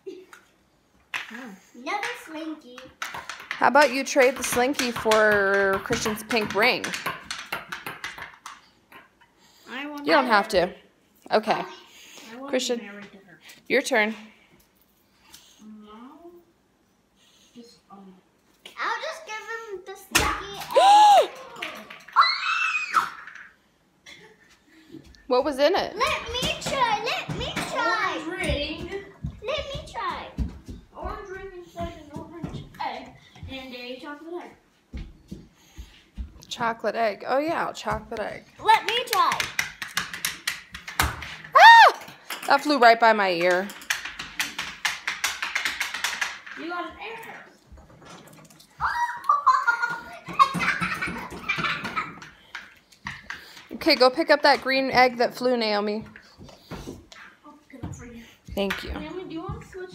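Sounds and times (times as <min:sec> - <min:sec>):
child squealing: 0:20.7 - 0:21.4, 0:22.2 - 0:23.3, 0:48.8 - 0:49.4
children's voices: 0:48.8 - 0:51.7.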